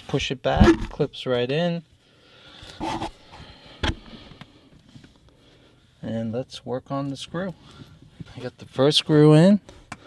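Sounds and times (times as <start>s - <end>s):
person sniffing: 2.7s - 3.4s.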